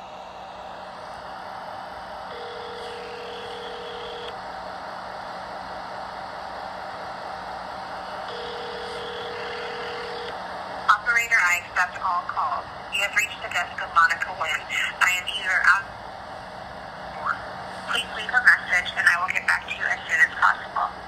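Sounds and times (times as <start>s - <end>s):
telephone ringback tone: 2.3s - 4.3s, 8.3s - 10.3s
phone line hiss and hum: 2.3s - 4.4s, 8.0s - 15.7s.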